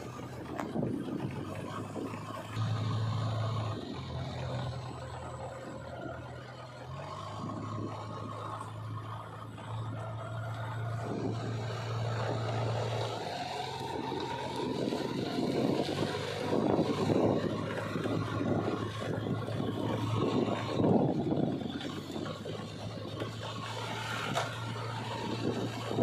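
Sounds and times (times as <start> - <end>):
diesel engine of loader driving: 0.0 - 26.0.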